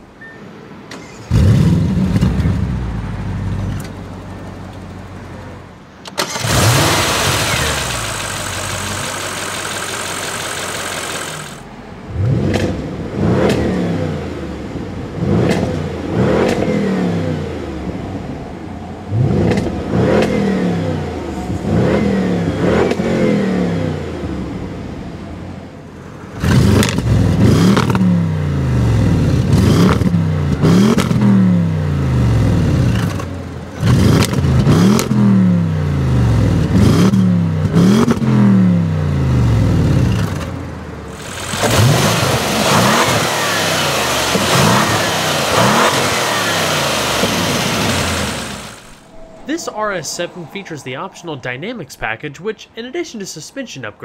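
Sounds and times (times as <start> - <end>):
car engine revving: 1.0 - 51.8.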